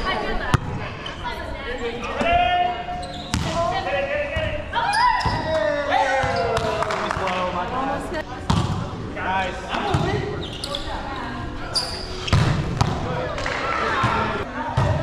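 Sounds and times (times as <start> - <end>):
players shouting: 3.7 - 7.2
hands hitting volleyball: 6.2 - 7.4.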